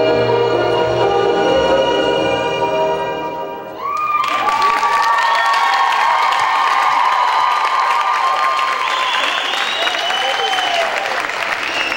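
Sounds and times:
audience applauding and cheering: 3.7 - 11.9.

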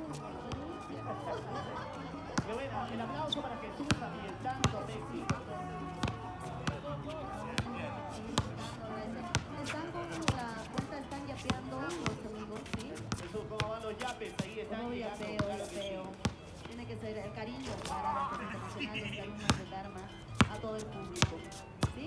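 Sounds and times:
music: 0.0 - 22.0
basketball bouncing on hard court: 3.8 - 5.4, 19.5 - 19.8.

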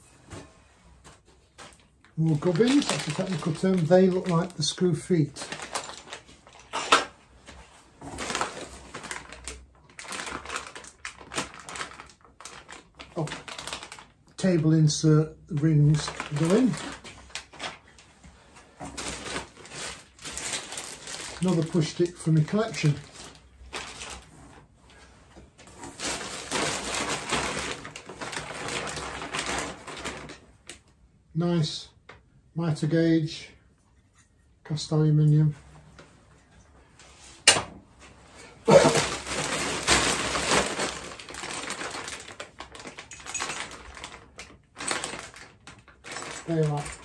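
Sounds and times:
plastic bags crinkling: 1.2 - 25.0, 25.6 - 30.8, 38.2 - 47.0.

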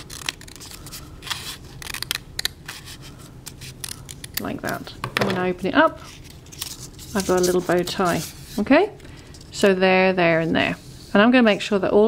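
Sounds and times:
scissors snipping paper: 0.0 - 4.8.

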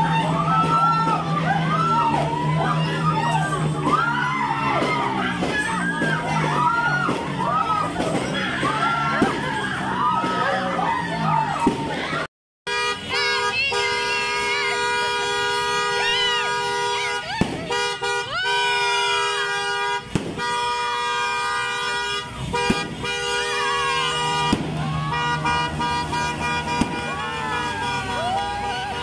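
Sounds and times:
people shouting and cheering: 0.0 - 29.0
firecracker bangs: 3.6 - 10.5, 14.3 - 29.0
horns sounding held tones: 12.7 - 29.0.

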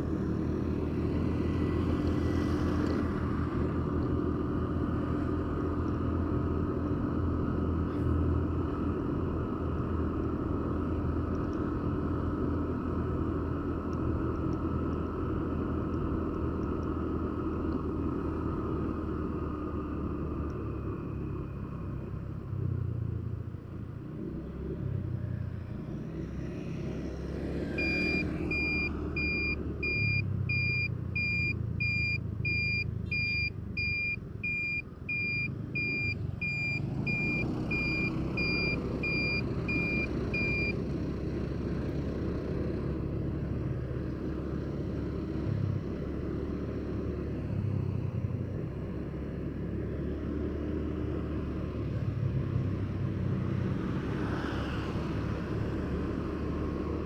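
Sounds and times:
road traffic rumble: 0.0 - 57.0
electronic warning beeper: 27.8 - 40.8.

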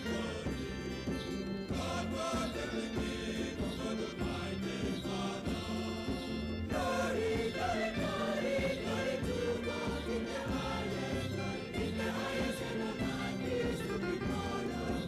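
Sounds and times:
hand drums: 0.0 - 15.0
large choir singing: 0.0 - 15.0.

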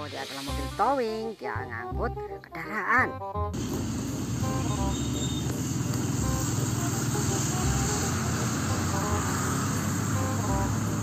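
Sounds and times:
motorcycles riding past: 3.6 - 11.0
truck engine running: 3.6 - 11.0.

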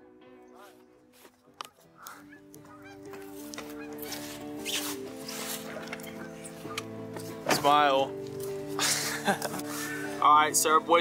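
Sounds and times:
geese honking: 0.5 - 7.2.

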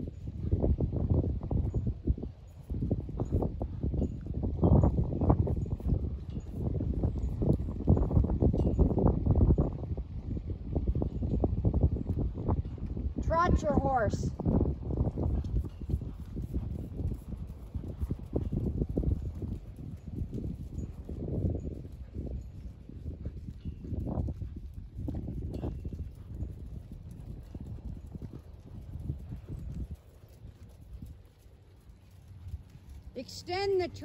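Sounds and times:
horse hooves trotting on sand: 0.0 - 34.0.

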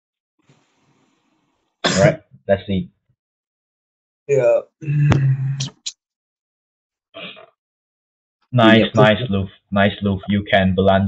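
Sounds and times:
man coughing: 1.9 - 2.2.

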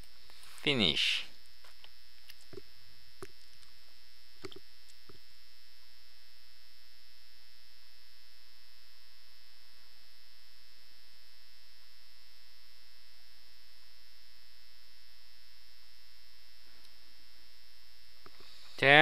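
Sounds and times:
electrical hum: 0.0 - 19.0
faint high whine: 0.0 - 19.0.

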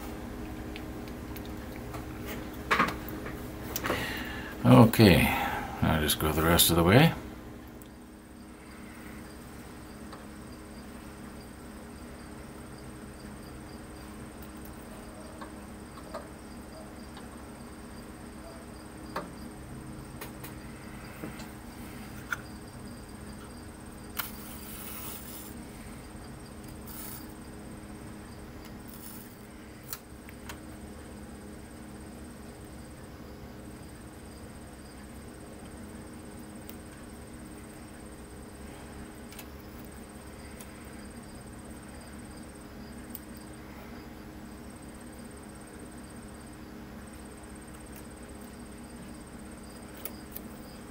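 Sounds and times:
steady hum with high whine: 0.0 - 50.9.

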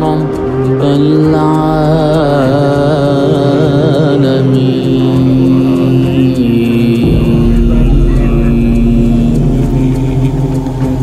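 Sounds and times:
chanting voice: 0.0 - 11.0
low rumble: 5.3 - 11.0.

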